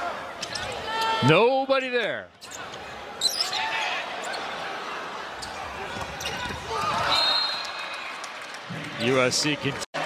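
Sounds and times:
sneakers squeaking: 0:02.4 - 0:04.6, 0:05.4 - 0:07.8.

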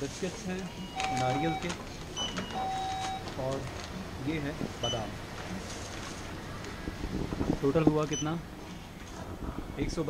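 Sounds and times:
checkout scanner beeping: 0:00.0 - 0:05.6, 0:08.1 - 0:08.4.

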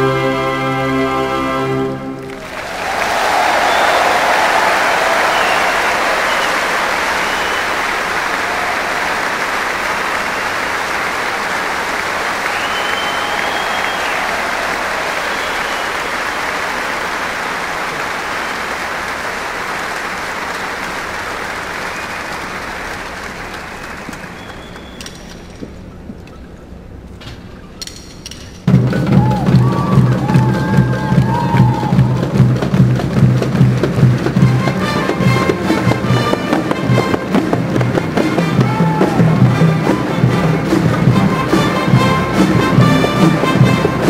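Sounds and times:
music: 0:00.0 - 0:02.4, 0:28.4 - 0:44.0
arena audience applauding: 0:02.2 - 0:25.6, 0:28.7 - 0:44.0
faint whistles: 0:05.2 - 0:07.9, 0:12.4 - 0:14.5, 0:15.1 - 0:16.4, 0:21.8 - 0:22.5, 0:23.8 - 0:25.5.

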